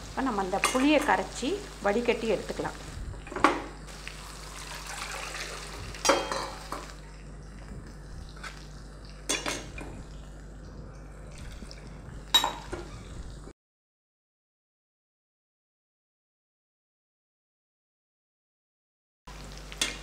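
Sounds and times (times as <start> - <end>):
water pouring through strainer: 4.2 - 6.0.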